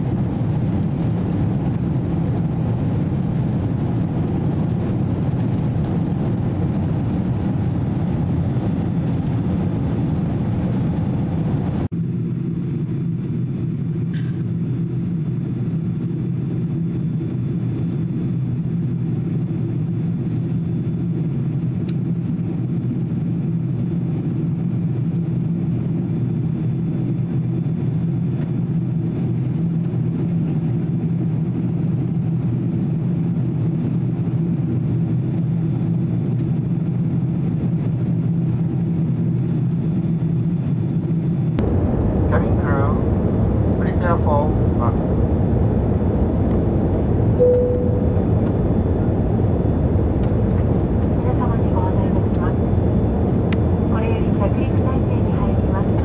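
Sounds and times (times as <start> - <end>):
jet engine cabin rumble: 0.0 - 56.0.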